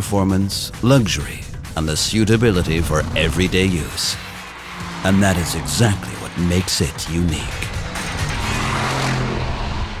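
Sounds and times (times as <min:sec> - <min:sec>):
background music: 0:00.0 - 0:10.0
car engine driving by: 0:01.8 - 0:10.0.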